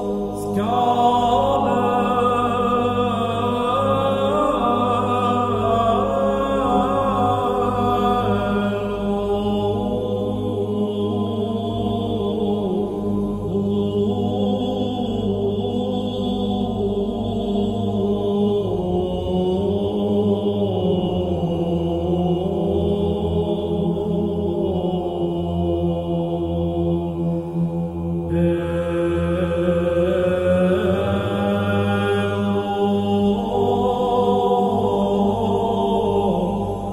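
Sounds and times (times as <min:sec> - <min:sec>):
low voices chanting: 0:00.0 - 0:36.9
steady low drone: 0:00.0 - 0:36.9.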